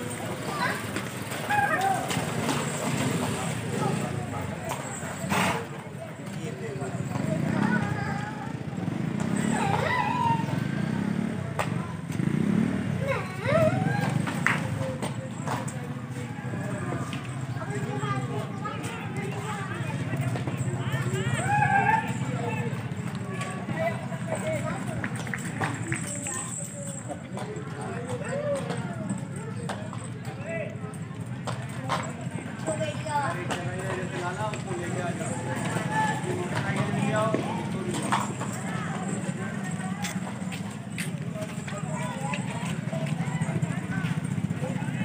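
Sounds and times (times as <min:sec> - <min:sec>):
people talking: 0:00.0 - 0:45.0
horse hooves on hard ground: 0:14.9 - 0:45.0.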